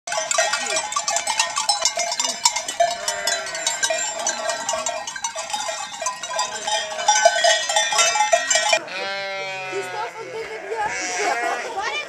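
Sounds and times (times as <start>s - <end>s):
sheep bells clanking: 0.1s - 12.0s
sheep bleating: 2.3s - 4.7s, 8.0s - 12.0s.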